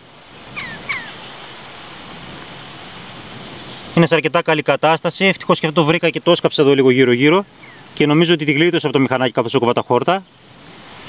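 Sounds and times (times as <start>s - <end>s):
bird chirps: 0.4s - 1.5s, 7.6s - 7.9s.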